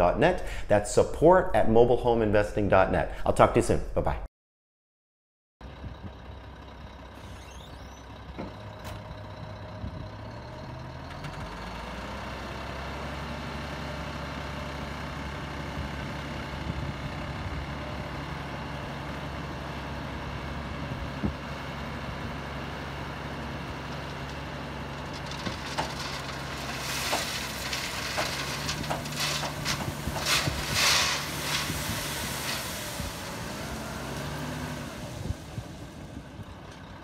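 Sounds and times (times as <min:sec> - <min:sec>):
diesel truck engine idling and revving: 0:05.6 - 0:37.0.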